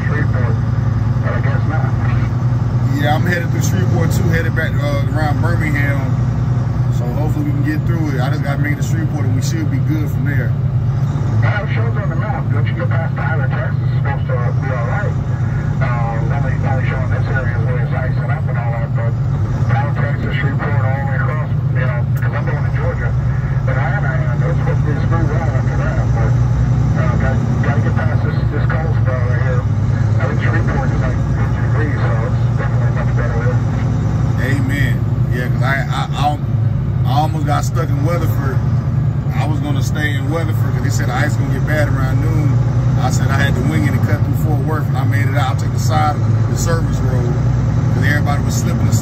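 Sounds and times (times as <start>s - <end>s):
people talking: 0.0s - 6.2s, 6.9s - 10.6s, 11.4s - 38.6s, 39.3s - 49.0s
road noise: 0.0s - 49.0s
truck engine drone: 0.0s - 49.0s.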